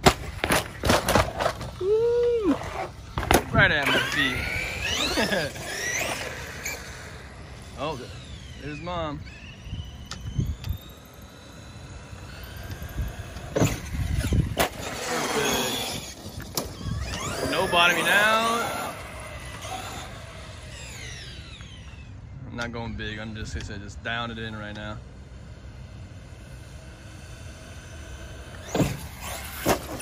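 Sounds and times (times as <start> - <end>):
tyre noise on asphalt: 0.0 - 7.8, 9.3 - 22.1, 25.3 - 30.0
electric motor whining: 1.6 - 30.0.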